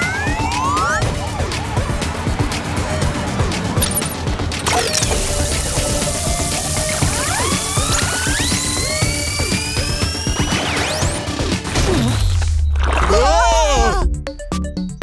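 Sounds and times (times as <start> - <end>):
cartoon background music: 0.0 - 15.0
rising whistle-like glide: 6.6 - 11.0.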